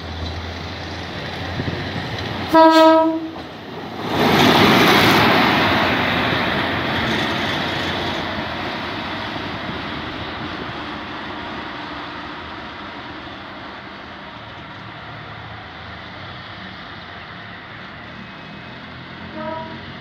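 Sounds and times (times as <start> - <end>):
rail truck running on track: 0.0 - 20.0.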